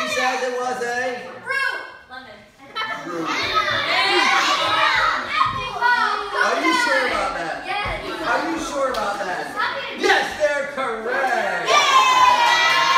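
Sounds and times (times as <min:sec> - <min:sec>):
children talking and calling out: 0:01.4 - 0:10.3.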